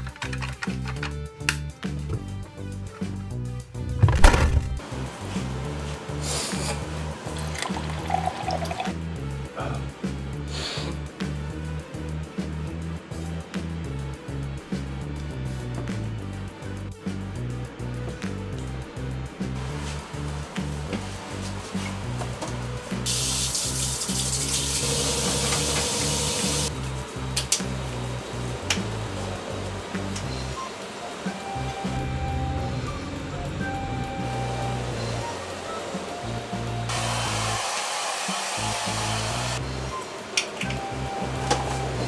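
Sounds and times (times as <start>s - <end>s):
background music: 0.0s - 42.0s
hair dryer blowing: 33.8s - 42.0s.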